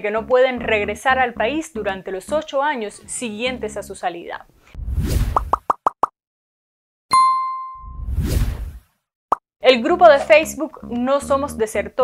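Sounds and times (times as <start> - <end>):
whoosh: 4.7 - 5.5, 7.8 - 8.9
bright ding: 7.1 - 8.0.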